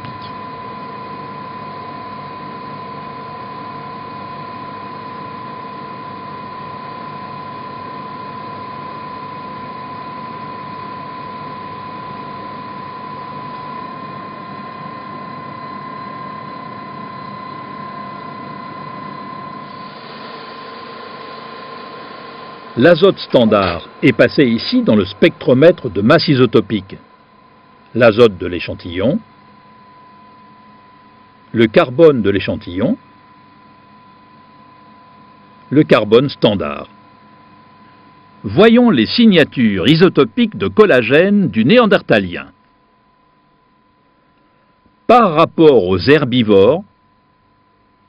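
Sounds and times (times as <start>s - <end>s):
high whine: 0.0s - 48.0s
laboratory equipment humming: 0.0s - 48.0s.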